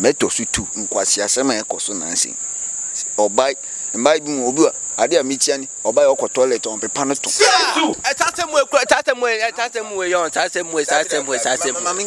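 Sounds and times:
man talking: 0.0s - 2.4s, 3.0s - 12.0s
crickets chirring: 0.0s - 12.0s.

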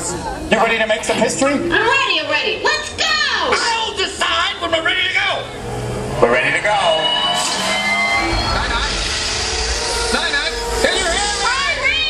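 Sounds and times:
deep rumble: 4.7s - 12.0s.

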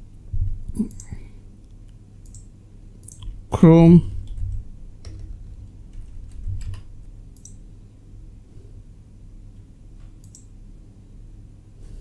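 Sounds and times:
low steady hum: 0.0s - 12.0s
computer mouse clicks: 0.7s - 1.2s, 2.2s - 3.4s, 5.0s - 7.6s, 10.0s - 10.5s.

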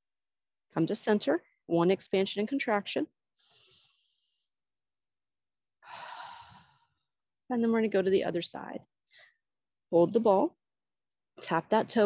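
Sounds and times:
woman exhaling: 5.9s - 6.8s.

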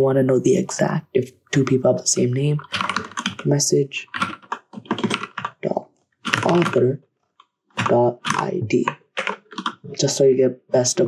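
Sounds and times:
computer keyboard typing: 1.6s - 7.0s, 7.8s - 10.3s.

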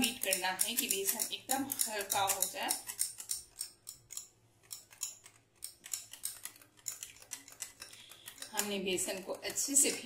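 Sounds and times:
whisk clicking against glass bowl: 0.0s - 10.0s.

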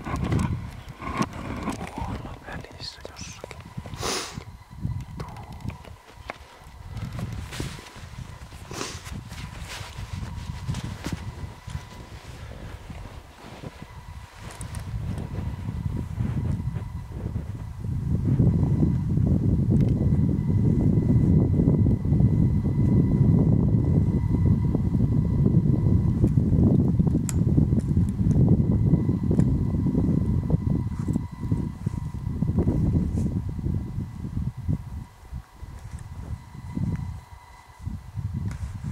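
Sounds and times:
wind buffeting microphone: 0.0s - 38.9s.

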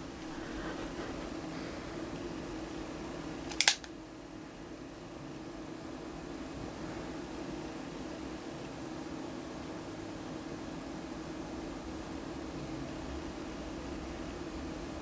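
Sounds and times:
revolver hammer cocking click: 3.5s - 3.9s.

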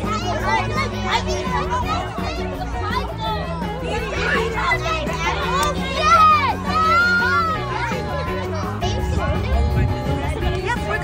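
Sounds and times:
children talking and calling out: 0.0s - 11.0s
music with bass line: 0.0s - 11.0s.

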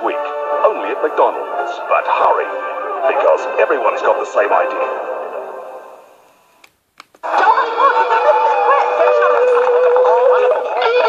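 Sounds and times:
tv commercial audio from speaker: 0.0s - 6.6s.

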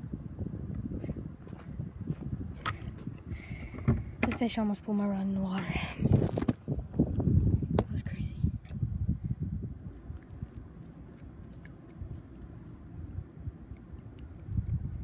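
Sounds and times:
low steady background rumble: 0.0s - 15.0s.

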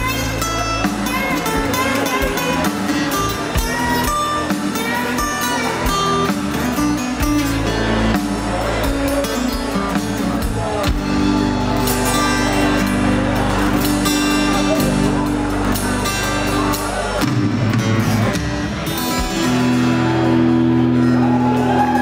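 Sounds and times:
live rock band instrumental: 0.0s - 22.0s.

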